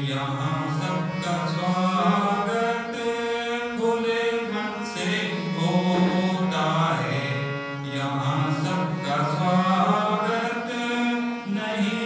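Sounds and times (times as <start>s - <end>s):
harmonium: 0.0s - 12.0s
man singing devotional song: 0.0s - 12.0s.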